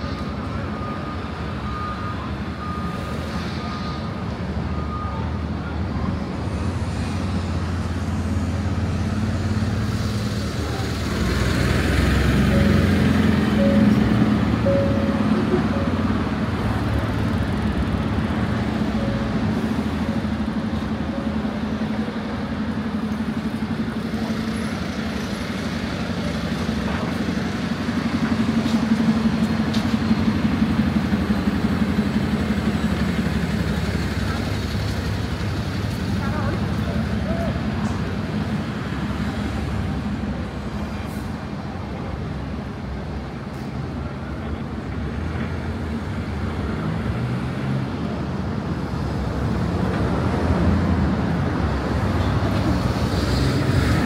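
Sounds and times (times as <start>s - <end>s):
vehicles passing: 0.0s - 54.0s.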